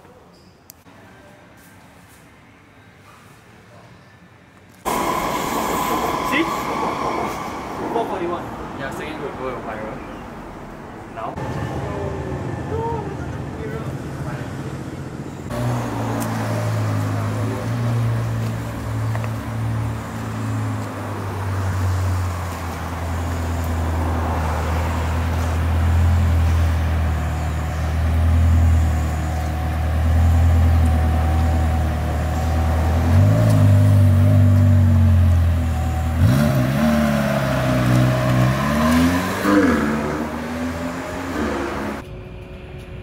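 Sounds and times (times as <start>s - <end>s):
car engine revving: 11.3s - 42.0s.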